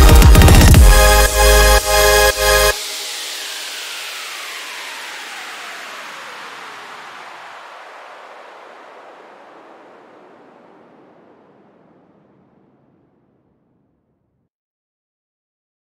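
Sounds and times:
electronic dance music: 0:00.0 - 0:07.2
falling whoosh of hiss: 0:01.4 - 0:09.9.

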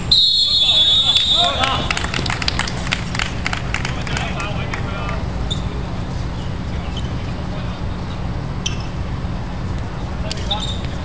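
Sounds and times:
steady low rumble: 0:00.0 - 0:11.0
short high squeaks: 0:05.4 - 0:07.4, 0:08.0 - 0:09.0, 0:10.4 - 0:11.0.

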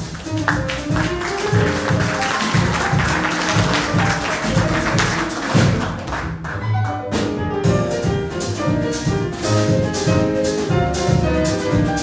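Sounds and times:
acoustic piano: 0:00.0 - 0:12.0
upright double bass: 0:00.0 - 0:12.0
drum kit cymbals: 0:07.2 - 0:12.0.

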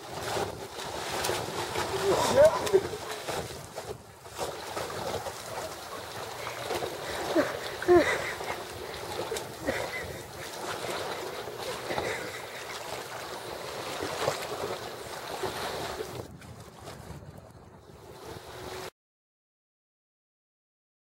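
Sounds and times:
water lapping at the shore: 0:00.0 - 0:18.9
wind buffeting the microphone: 0:15.4 - 0:18.8.

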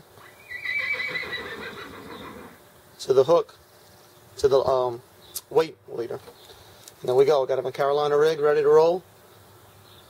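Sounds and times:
horse whinnying: 0:00.3 - 0:02.6.

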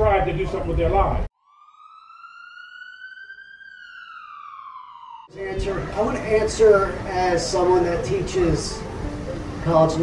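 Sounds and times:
siren wailing: 0:01.3 - 0:06.4.

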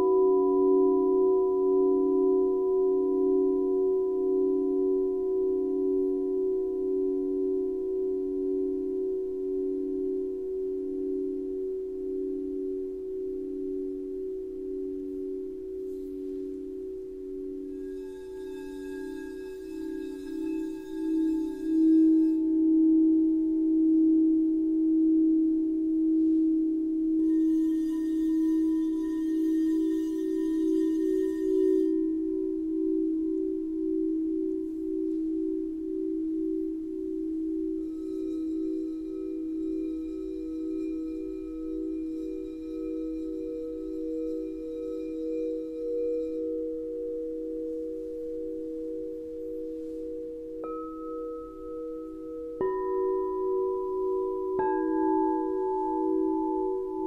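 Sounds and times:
crystal singing bowls ringing: 0:00.0 - 0:57.0
higher singing bowl: 0:00.0 - 0:57.0.

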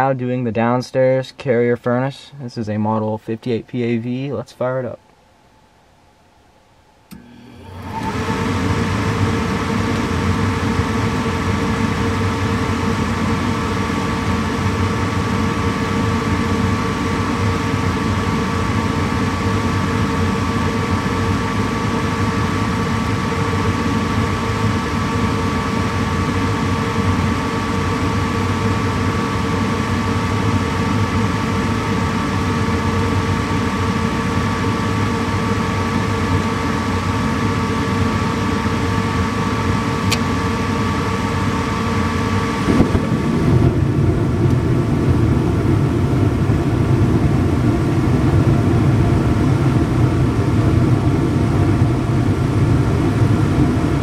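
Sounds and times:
draft inducer motor hum and whine: 0:06.6 - 0:54.0.

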